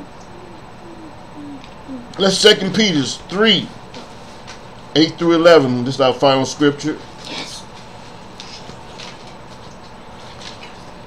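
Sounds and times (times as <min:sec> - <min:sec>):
soft low humming: 0:00.0 - 0:06.3.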